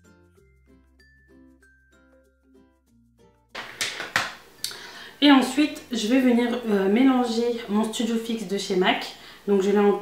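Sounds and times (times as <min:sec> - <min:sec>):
soft background music: 0:00.0 - 0:09.0.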